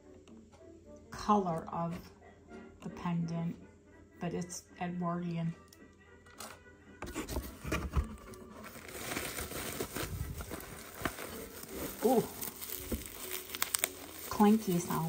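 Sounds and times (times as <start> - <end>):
cardboard box flaps opening: 7.2 - 13.5
bubble wrap crinkling: 8.0 - 15.0.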